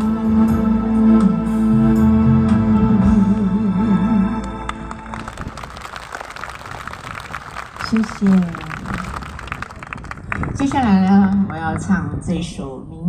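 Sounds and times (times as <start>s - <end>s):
audience applauding: 4.7s - 11.4s.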